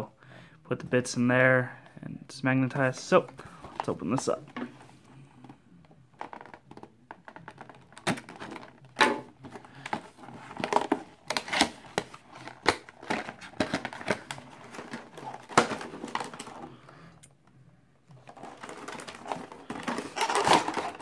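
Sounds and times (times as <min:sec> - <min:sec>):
cardboard rustling and scraping: 0:09.4 - 0:16.7, 0:18.2 - 0:21.0.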